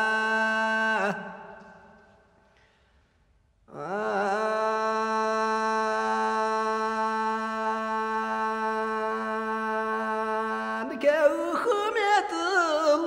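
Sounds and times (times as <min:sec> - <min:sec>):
man singing folk song: 0:05.0 - 0:13.0.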